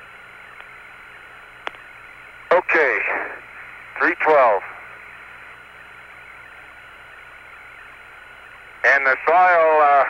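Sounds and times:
radio hiss and low hum: 0.0 - 10.0.

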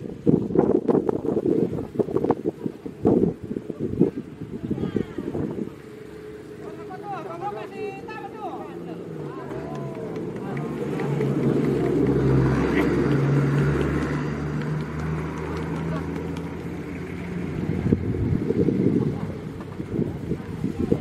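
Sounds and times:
vehicle engine passing by: 1.3 - 21.0
people's voices: 1.6 - 21.0.

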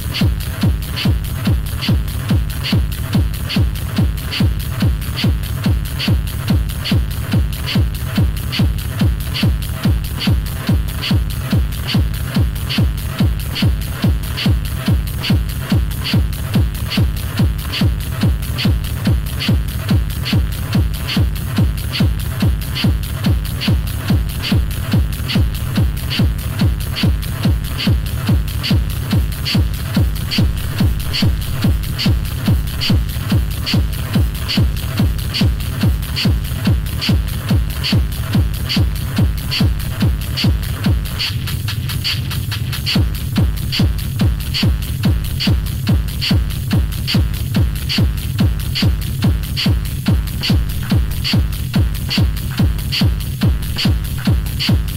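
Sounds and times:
fast techno kick drum: 0.0 - 54.9.

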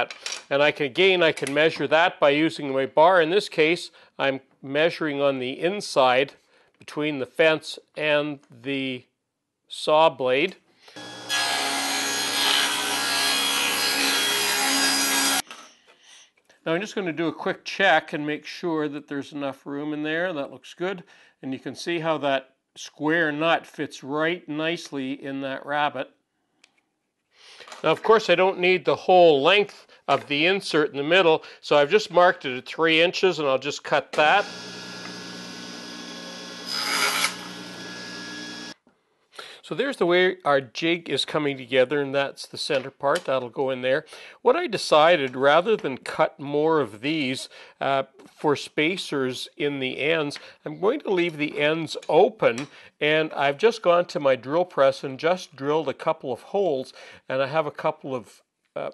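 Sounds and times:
table saw ripping wood: 11.0 - 15.4, 34.2 - 38.8.

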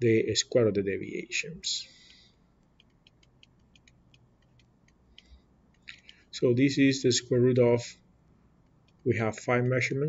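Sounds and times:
stylus tapping on tablet screen: 2.1 - 6.2.

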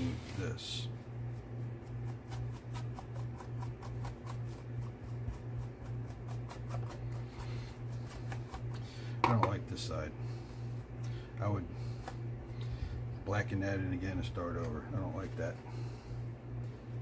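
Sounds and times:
paintbrush scratching on paper: 0.0 - 8.8
low hum: 0.0 - 17.0.

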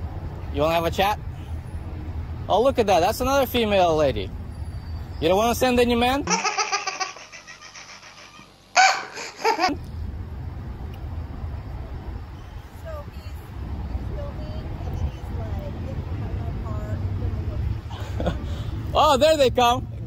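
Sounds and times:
baby laughing: 6.3 - 9.8.

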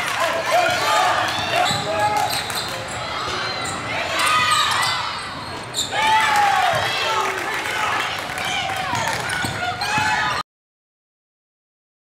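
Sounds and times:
sneakers squealing on hardwood: 0.7 - 6.1.

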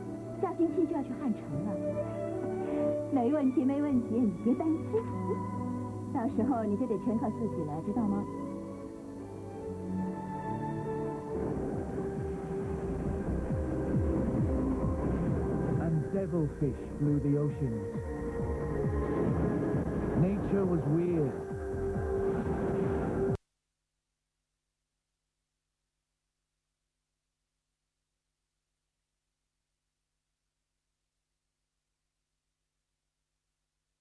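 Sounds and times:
faint steady hum and hiss: 0.0 - 23.4
electronic soundtrack music: 1.2 - 23.4.

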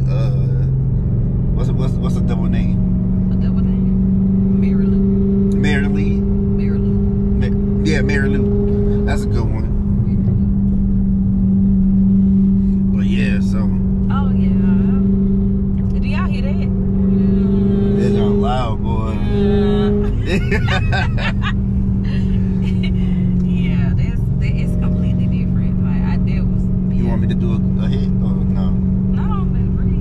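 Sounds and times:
car engine and road noise hum: 0.0 - 30.0.

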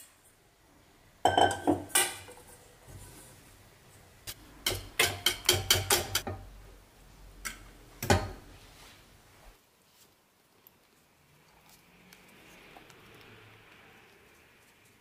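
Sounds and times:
whisk clicking against saucepan: 4.6 - 6.4.

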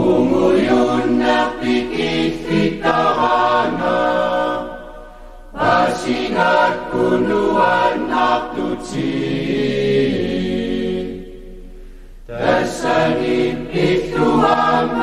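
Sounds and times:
choir singing: 0.0 - 11.7, 12.3 - 15.0.

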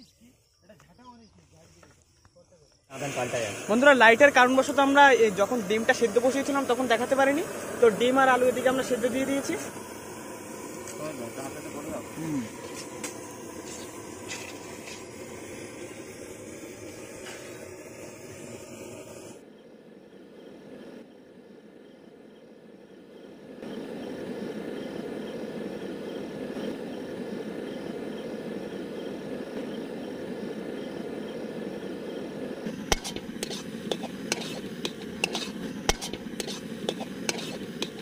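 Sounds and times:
stove burner roaring: 2.9 - 19.4, 26.1 - 38.0.

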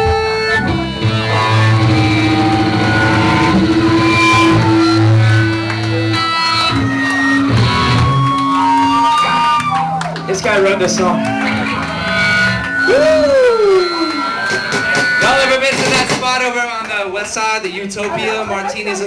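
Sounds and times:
amplified bass guitar: 0.0 - 15.7
amplified electric guitar: 0.0 - 16.4.

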